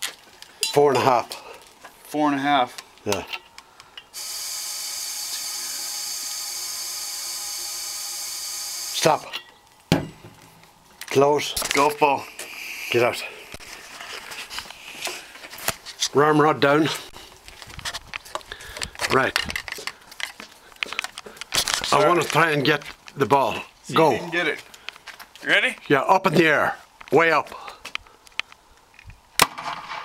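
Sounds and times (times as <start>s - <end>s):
camera rubbing against clothing: 12.3s - 16.2s.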